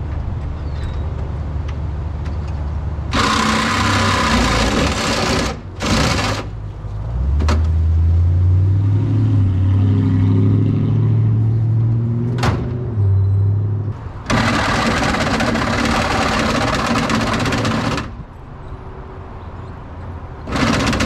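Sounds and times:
power tool cutting sheet metal: 3.1s - 6.5s, 14.3s - 18.1s, 20.5s - 21.0s
passing vehicle engine hum: 6.5s - 14.4s.

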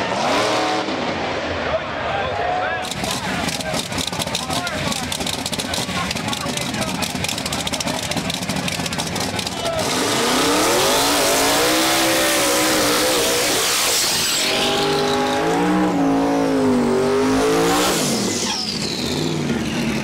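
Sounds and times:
engine revving hard: 0.0s - 1.1s, 9.7s - 20.0s
tires spinning: 2.7s - 20.0s
drag car engine crackling: 2.8s - 16.0s.

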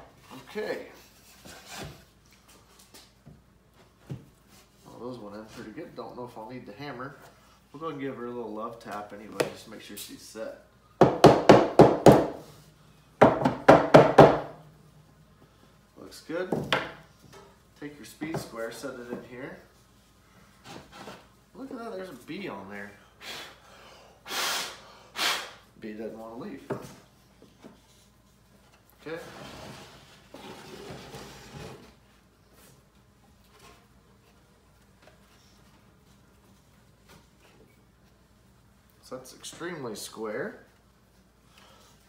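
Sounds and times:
wooden box scraping on workbench: 29.2s - 32.0s.

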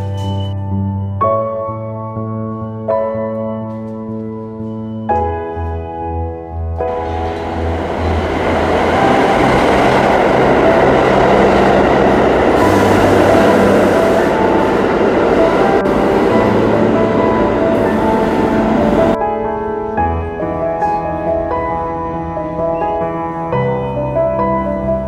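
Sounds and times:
subway train rumble: 6.8s - 25.0s.

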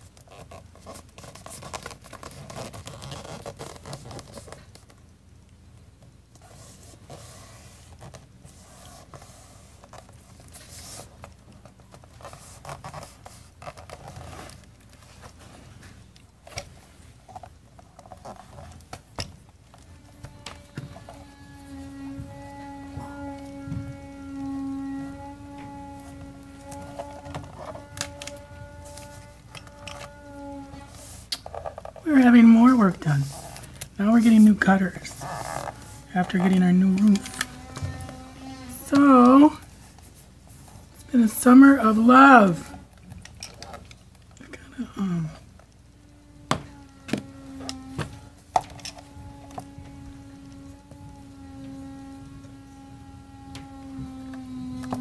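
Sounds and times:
paper rustling and scraping: 0.0s - 5.0s, 6.4s - 44.1s
steady pitched machine hum: 18.1s - 55.0s.

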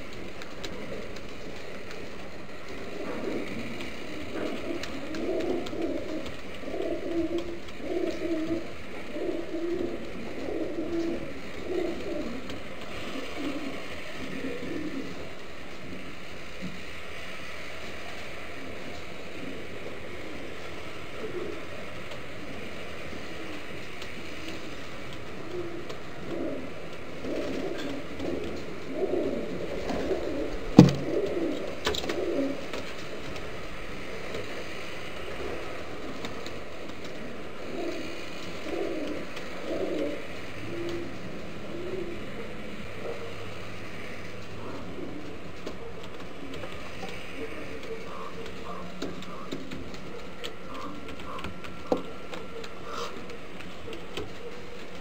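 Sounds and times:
pigeons cooing: 0.0s - 55.0s.

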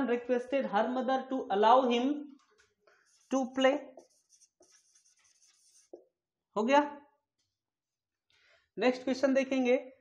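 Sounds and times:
marker pen writing on whiteboard: 2.2s - 6.2s.

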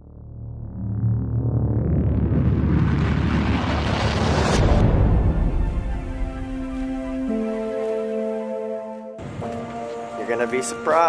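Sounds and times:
noisy whoosh with deep rumble: 0.0s - 7.3s
sharp hit: 1.7s - 6.6s.

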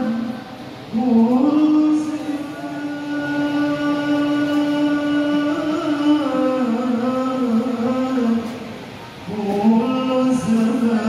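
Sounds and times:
man singing devotional chant: 0.0s - 8.7s, 9.3s - 11.0s.

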